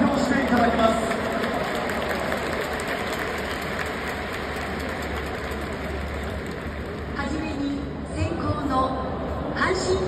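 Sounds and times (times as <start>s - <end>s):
crowd murmur: 7.8s - 10.0s.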